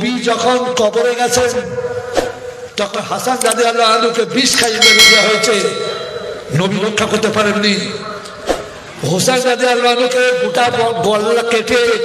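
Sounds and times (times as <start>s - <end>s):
man preaching: 0.0s - 1.9s, 2.8s - 8.2s, 9.0s - 12.0s
metallic clang ringing: 4.5s - 8.4s.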